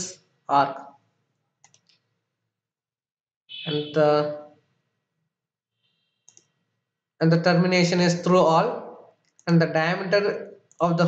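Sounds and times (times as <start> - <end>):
computer mouse clicks: 1.6 - 2.1, 6.2 - 6.6, 9.2 - 9.5.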